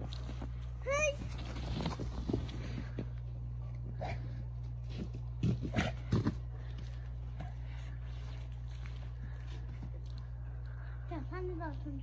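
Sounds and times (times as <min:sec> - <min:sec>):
steady low rumble: 0:00.0 - 0:12.0.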